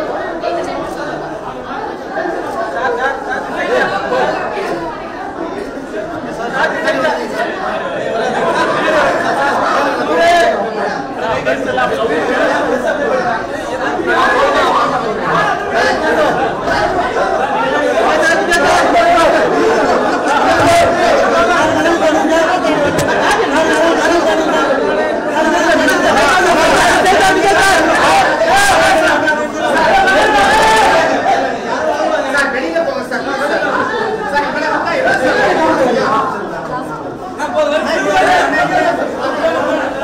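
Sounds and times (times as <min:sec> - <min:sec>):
babble of overlapping voices: 0:00.0 - 0:40.0
crowd chatter: 0:00.0 - 0:40.0.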